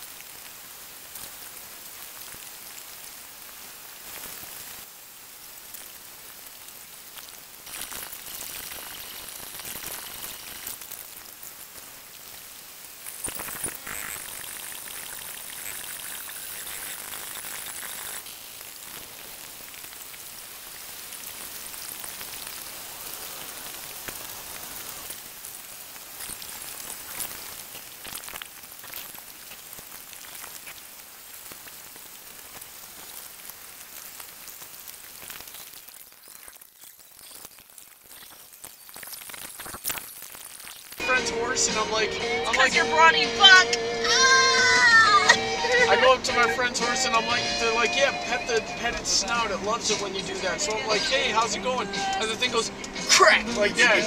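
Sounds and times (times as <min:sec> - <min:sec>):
steady high-pitched hiss: 0:00.0 - 0:54.0.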